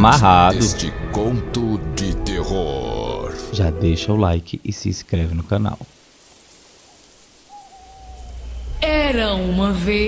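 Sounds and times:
low rumbling drone: 0.0s - 4.3s
long hooting call: 2.0s - 4.1s, 6.9s - 9.2s.

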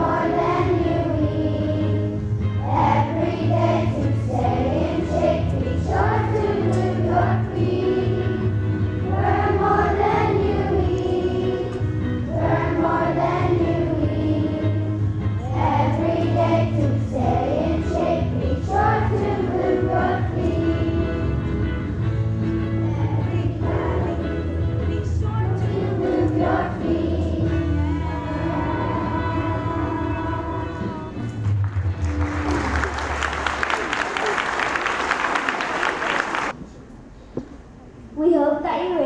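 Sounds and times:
children's choir singing: 0.0s - 31.4s.

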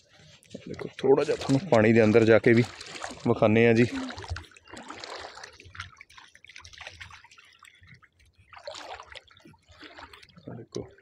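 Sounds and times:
water dripping and trickling: 0.0s - 11.0s.

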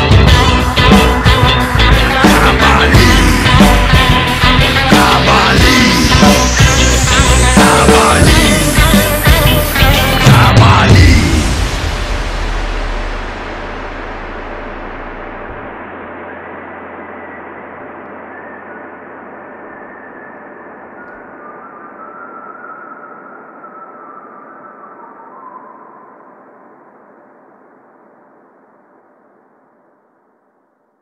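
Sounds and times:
hazy rushing wash: 0.0s - 22.0s
low hum: 0.0s - 30.1s.

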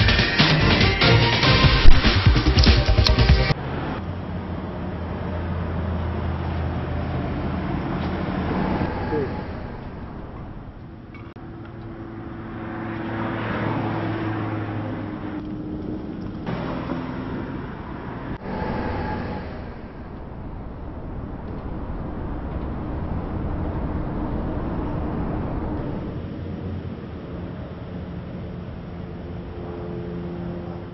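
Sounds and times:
passing vehicle engine hum: 3.5s - 30.9s.

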